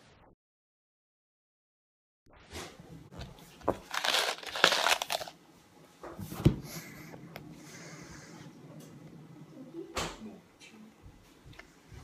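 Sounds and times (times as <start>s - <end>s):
candy wrapper crinkling: 3.7s - 5.4s.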